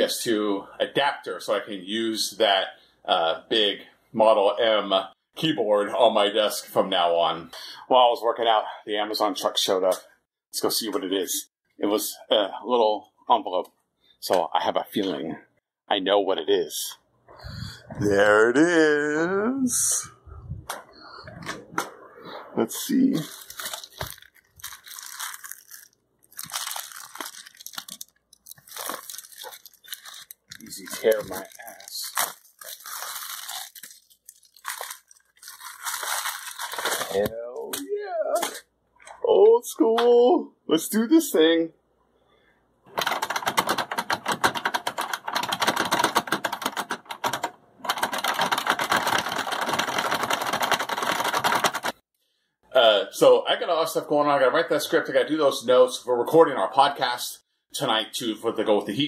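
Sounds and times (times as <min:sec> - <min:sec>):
envelope tearing and crinkling: 0:23.1 - 0:37.2
fast typing on mechanical keyboard: 0:43.0 - 0:52.0.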